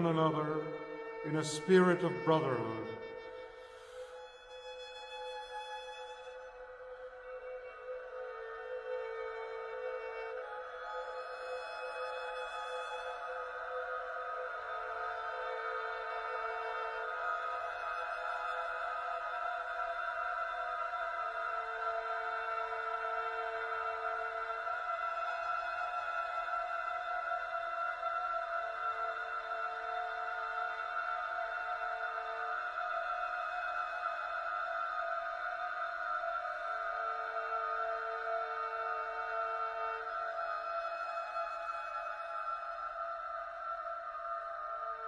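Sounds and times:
solo violin: 0.0s - 45.0s.

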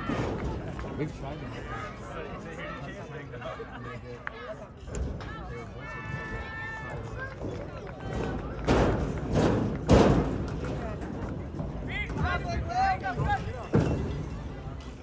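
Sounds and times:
loud thuds: 8.1s - 14.2s.

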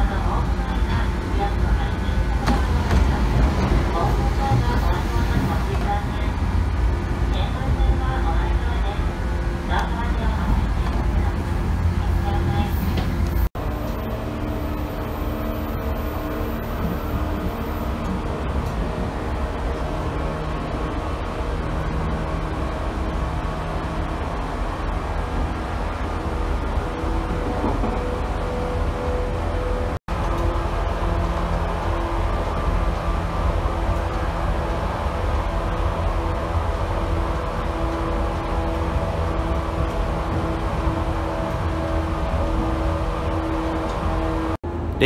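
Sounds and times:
train running rumble: 0.0s - 45.0s.

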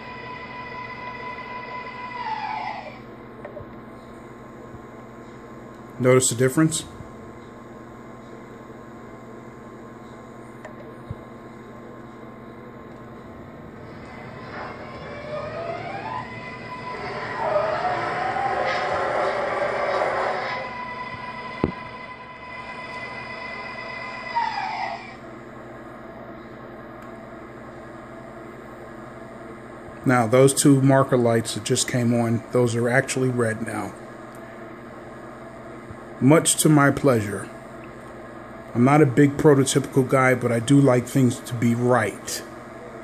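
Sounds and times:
model train motor whine: 0.0s - 3.0s, 13.8s - 25.2s.

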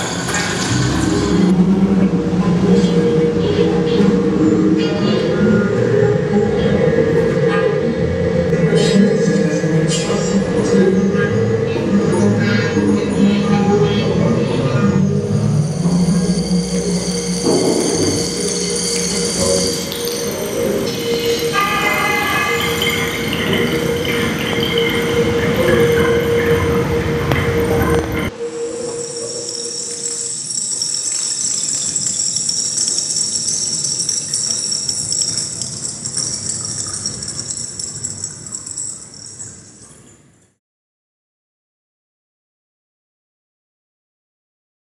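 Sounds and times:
held mid drone tone: 0.0s - 37.6s
high steady tones: 14.8s - 39.8s.

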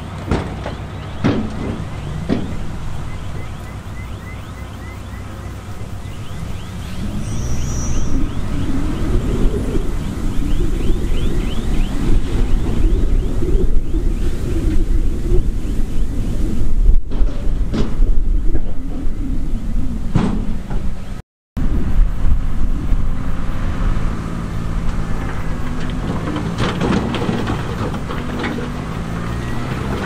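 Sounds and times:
heavy diesel machinery rumbling: 0.0s - 30.0s.

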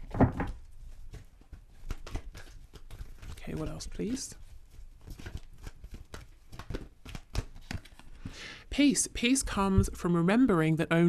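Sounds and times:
cards clicking and tapping on table: 0.1s - 3.7s, 5.0s - 8.4s.

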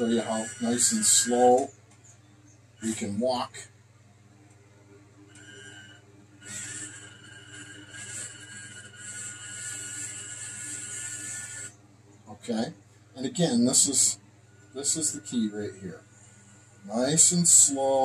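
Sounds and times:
electric motors and gears whining: 0.0s - 3.8s, 4.4s - 18.0s.

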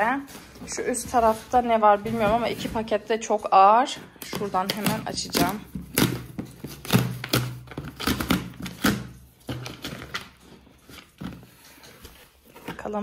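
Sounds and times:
parcel rustling: 0.0s - 7.0s
knocks and thumps on a parcel: 0.9s - 3.0s.

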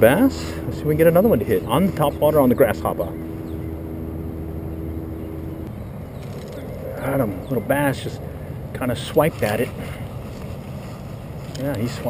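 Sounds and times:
held tone: 0.0s - 8.8s
low engine hum: 0.0s - 12.0s.

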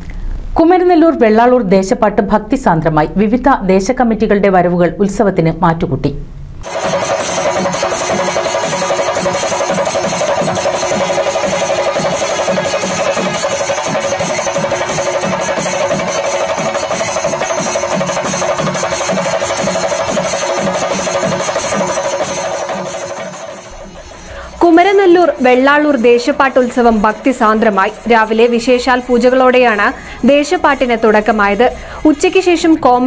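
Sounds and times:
hand cymbals clashing: 6.6s - 32.3s
drums beaten with sticks: 6.6s - 32.8s
horns holding a steady tone: 6.6s - 32.8s.

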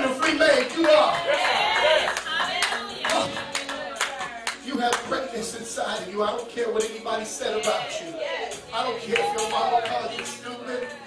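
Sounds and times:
congregation clapping in rhythm: 0.0s - 11.0s.

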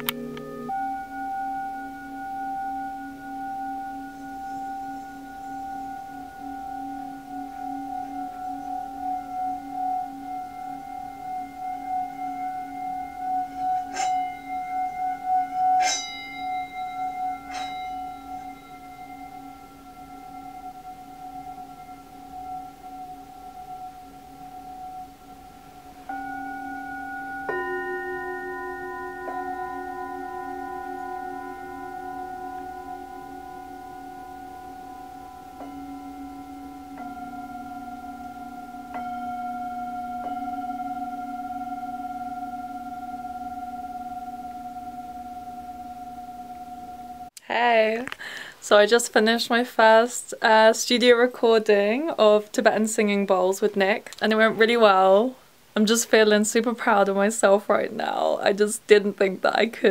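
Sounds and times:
hand-held bowl struck: 0.0s - 47.4s
singing bowls ringing: 0.0s - 47.4s.

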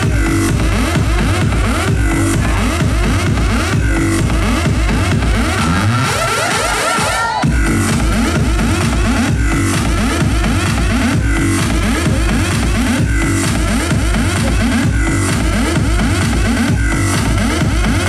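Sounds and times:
loud electronic dance music: 0.0s - 18.0s.

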